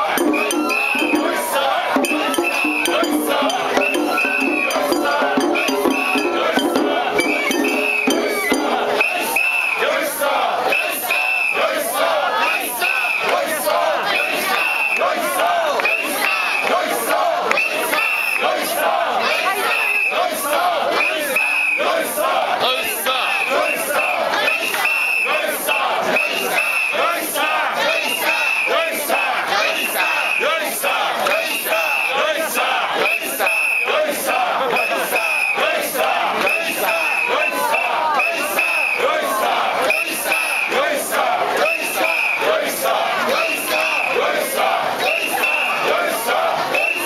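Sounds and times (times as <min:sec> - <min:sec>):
crowd shouting and chanting: 0:00.0 - 0:47.0.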